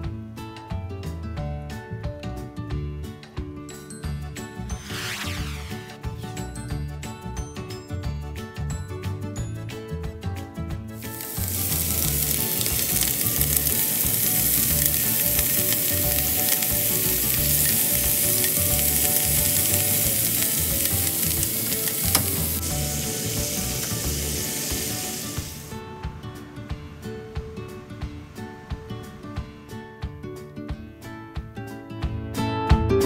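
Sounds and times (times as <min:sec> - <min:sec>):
soft background music: 0:00.0 - 0:33.0
food sizzling in a pan: 0:11.0 - 0:25.8.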